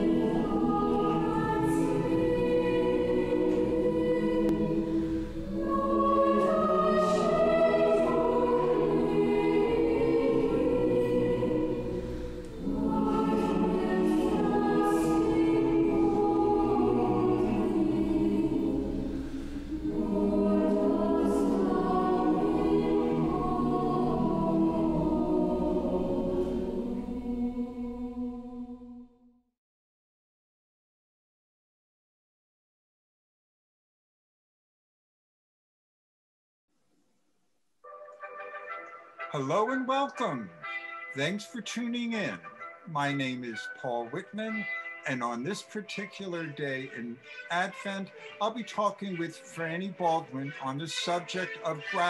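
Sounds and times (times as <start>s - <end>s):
choir singing: 0.0s - 29.2s, 37.9s - 52.0s.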